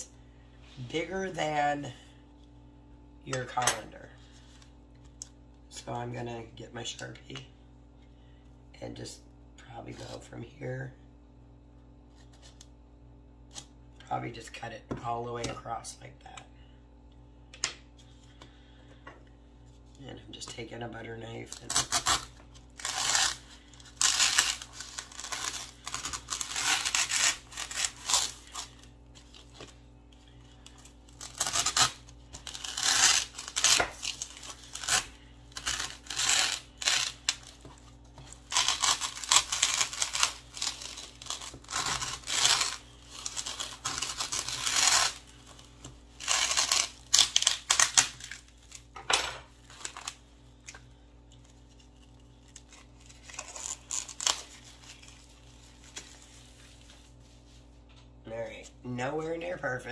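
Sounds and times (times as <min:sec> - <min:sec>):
knife sawing through styrofoam: 0:21.6 - 0:28.8, 0:31.2 - 0:37.3, 0:38.4 - 0:45.3.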